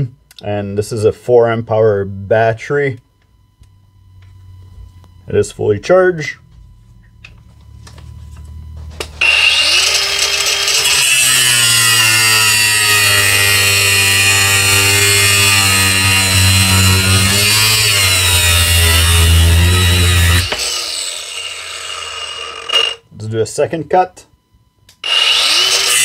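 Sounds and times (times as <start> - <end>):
angle grinder cutting steel: 9.2 - 23.0, 25.0 - 26.0.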